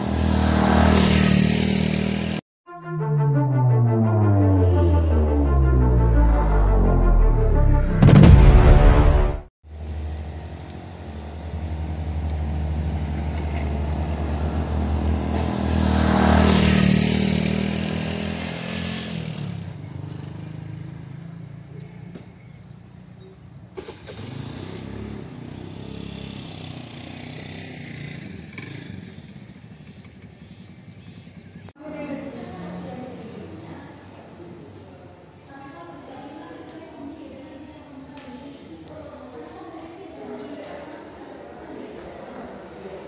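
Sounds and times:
motorcycle passing: 0.0s - 2.4s, 9.8s - 22.1s, 24.0s - 34.4s
outdoor background noise: 9.6s - 43.0s.

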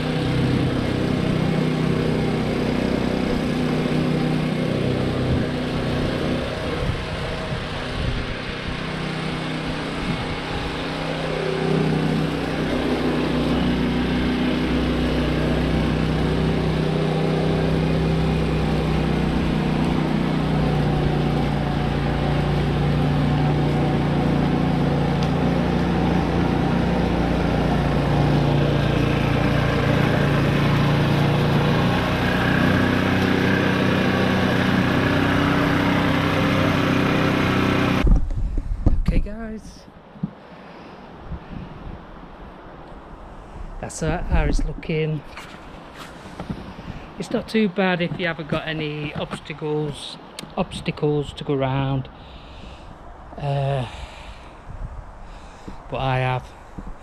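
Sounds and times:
lawn mower engine running: 0.0s - 38.8s, 43.8s - 54.6s.

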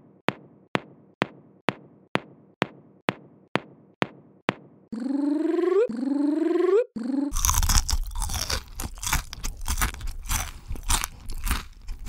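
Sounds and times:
crunching and chewing food: 7.3s - 12.0s.

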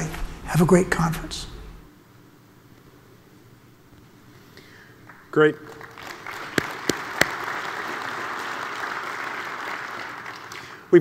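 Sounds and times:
audience applauding: 5.1s - 10.9s.

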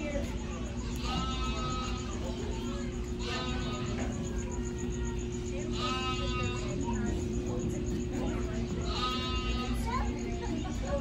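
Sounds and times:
steady room hum: 0.0s - 11.0s
animal bleating: 0.8s - 4.4s, 5.6s - 7.2s, 8.4s - 10.2s.

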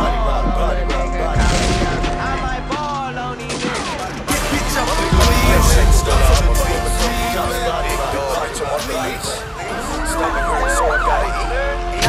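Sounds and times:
steady low hum: 5.1s - 8.6s.

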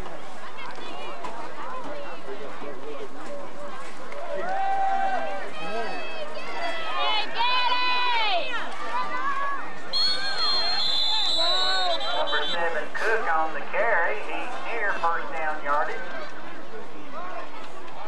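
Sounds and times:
spectators shouting and cheering: 3.5s - 18.0s
referee's whistle: 9.9s - 12.7s.

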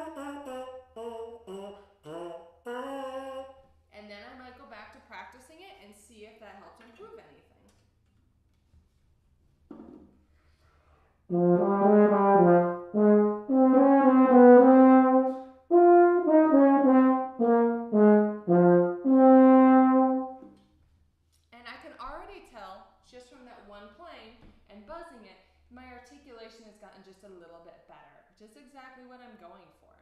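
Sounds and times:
low brass instrument playing: 11.3s - 20.5s.

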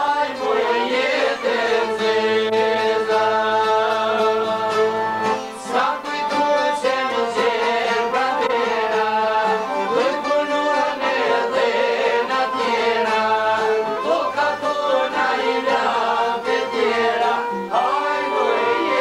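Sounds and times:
man singing: 0.0s - 19.0s
plucked lutes strumming: 0.0s - 19.0s.

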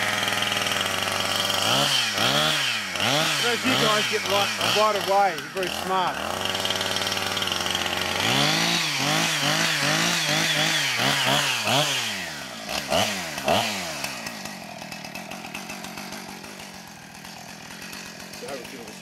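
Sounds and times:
chainsaw idling and revving: 0.0s - 19.0s.

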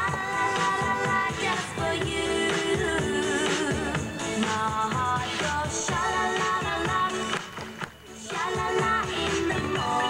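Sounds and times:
pop music with steady beat: 0.0s - 10.0s.

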